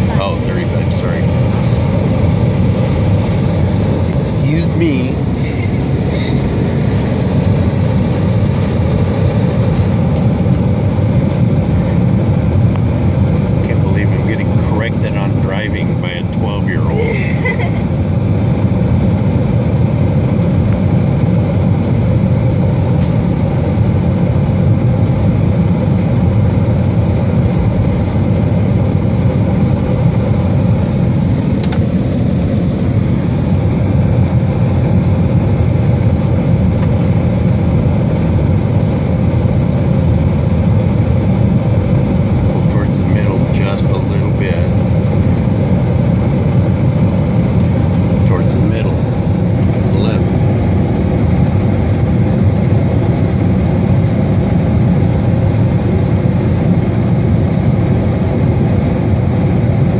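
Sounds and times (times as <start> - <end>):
car road and engine noise: 0.0 - 59.9.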